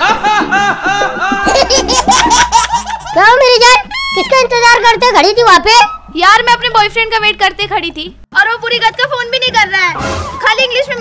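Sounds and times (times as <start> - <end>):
high-pitched laughter: 0.0 - 4.2.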